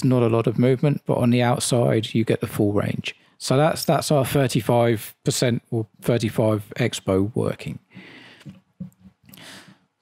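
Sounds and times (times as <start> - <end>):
breath intake: 9.3 - 9.8.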